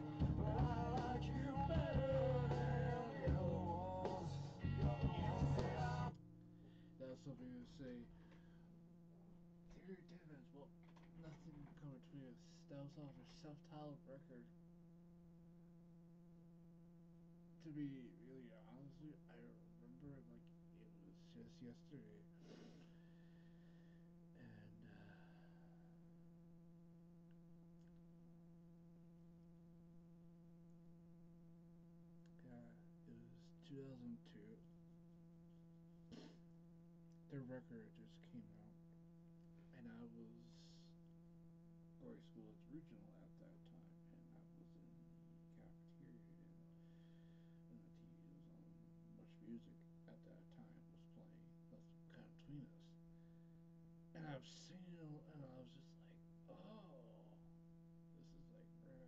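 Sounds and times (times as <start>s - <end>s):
faint low hum: 0.0s - 59.0s
person speaking softly: 42.0s - 46.6s, 47.7s - 53.0s, 54.2s - 57.4s.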